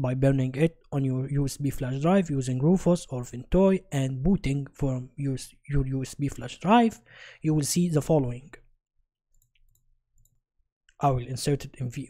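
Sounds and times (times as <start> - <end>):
faint computer mouse clicks: 9.3 - 10.4.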